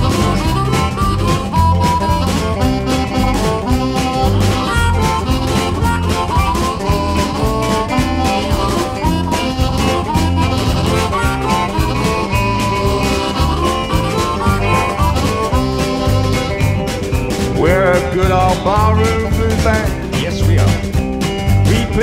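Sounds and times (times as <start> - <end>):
drums keeping a beat: 0.0 - 22.0
electric guitar: 0.0 - 22.0
harmonica: 0.0 - 22.0
upright double bass: 0.0 - 22.0.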